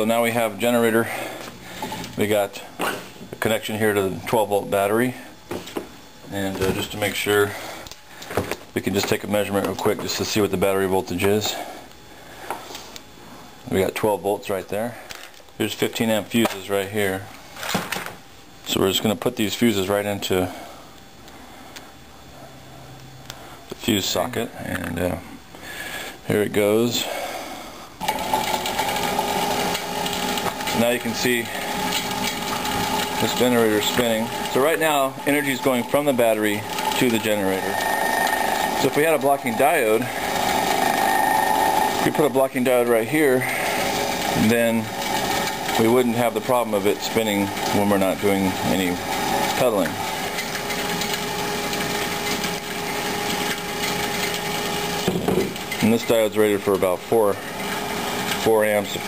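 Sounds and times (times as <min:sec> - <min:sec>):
electric motor whine: 0:28.0 - 0:55.9.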